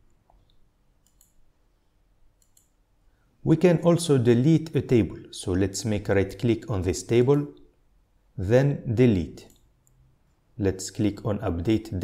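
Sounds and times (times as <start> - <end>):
computer mouse clicks: 0.3 - 1.4, 2.4 - 2.8.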